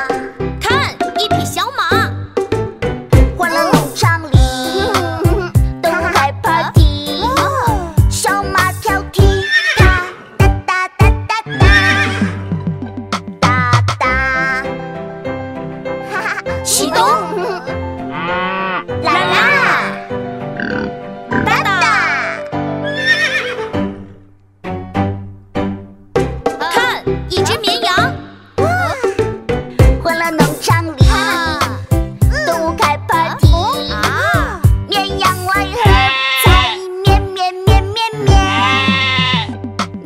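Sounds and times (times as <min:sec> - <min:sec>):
children's song music: 0:00.0 - 0:40.0
sheep-like bleat voiced in song: 0:09.2 - 0:10.2, 0:11.4 - 0:12.4, 0:18.1 - 0:19.9, 0:35.7 - 0:37.0, 0:38.1 - 0:39.6
horse whinny: 0:09.4 - 0:10.4, 0:11.5 - 0:12.5, 0:18.1 - 0:19.5, 0:20.6 - 0:21.6, 0:22.8 - 0:24.3
cow mooing: 0:18.1 - 0:19.0, 0:20.6 - 0:21.6.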